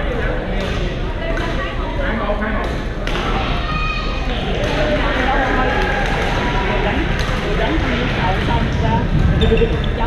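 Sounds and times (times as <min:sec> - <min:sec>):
footwork and shuttlecock knocks: 0:07.1 - 0:07.8.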